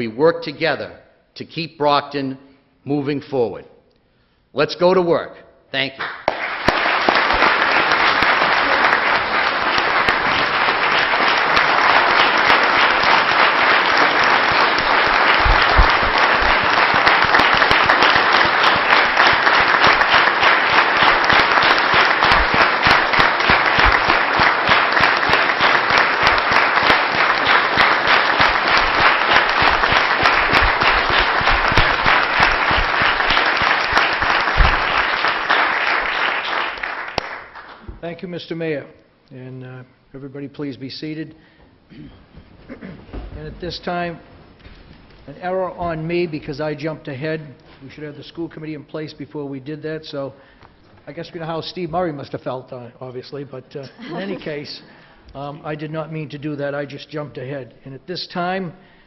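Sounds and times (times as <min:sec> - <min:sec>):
large audience applauding: 0:06.0 - 0:37.8.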